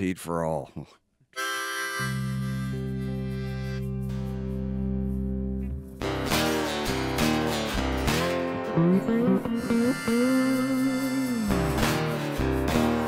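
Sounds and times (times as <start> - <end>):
guitars strumming and picking: 2.0 - 13.0
sliding lead guitar line: 2.0 - 13.0
rock band playing: 2.1 - 13.0.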